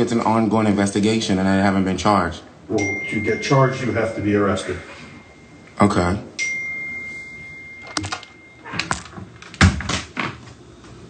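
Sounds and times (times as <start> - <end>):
steady high tone: 2.7 - 9.2.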